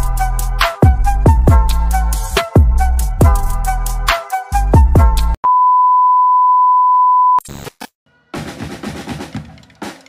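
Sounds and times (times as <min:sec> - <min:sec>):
music: 0:00.0 - 0:05.4, 0:08.1 - 0:10.0
steady test tone beep: 0:05.4 - 0:07.4.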